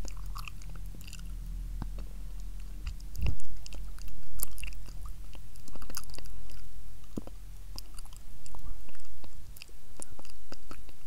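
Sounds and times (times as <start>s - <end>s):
whispering close to microphone: 7.8s - 11.0s.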